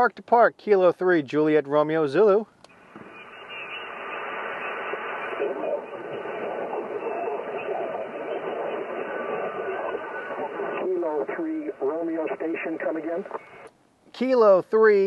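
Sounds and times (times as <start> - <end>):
radio static hiss: 2.2 - 15.0.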